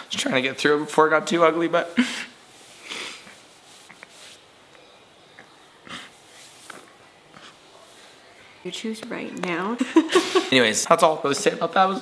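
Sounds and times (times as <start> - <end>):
man sniffling and crying: 2.0 - 3.4.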